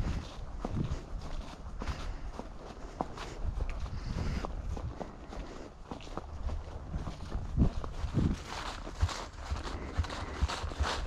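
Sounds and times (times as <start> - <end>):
horse hooves on dirt: 0.0 - 11.0
leaves rustling: 0.0 - 11.0.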